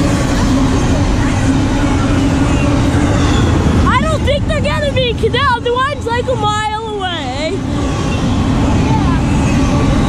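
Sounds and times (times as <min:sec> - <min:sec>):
freight train wheels rumbling: 0:00.0 - 0:10.0.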